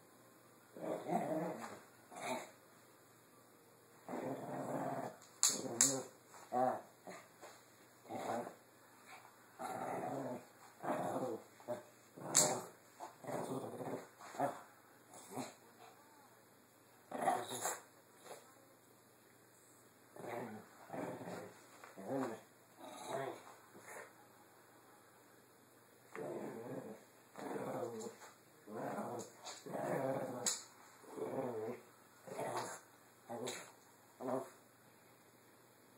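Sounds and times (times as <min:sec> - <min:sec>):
small dog growling in play: 0:00.7 - 0:02.6, 0:04.0 - 0:07.3, 0:08.0 - 0:16.0, 0:17.1 - 0:18.4, 0:20.1 - 0:24.1, 0:26.1 - 0:34.6.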